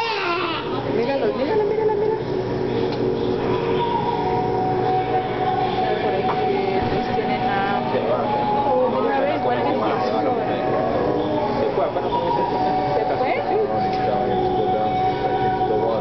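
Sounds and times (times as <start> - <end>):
indistinct voices: 0.0 - 16.0
mechanical hum with held tones: 0.0 - 16.0.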